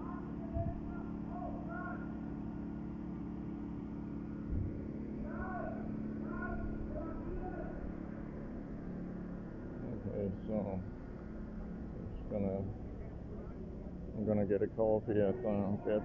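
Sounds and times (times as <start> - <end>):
distant voices: 0.0 - 16.0
steady low hum: 0.0 - 16.0.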